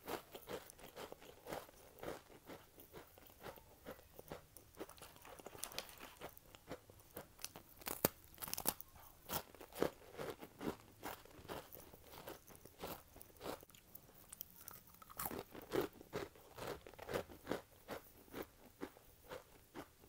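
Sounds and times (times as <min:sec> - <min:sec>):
chewing crunchy cookie: 0:00.0 - 0:20.0.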